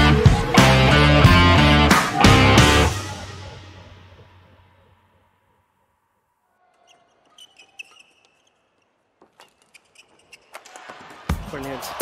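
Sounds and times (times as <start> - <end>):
music: 0.0 - 5.3
shoes squeaking on court: 6.7 - 11.2.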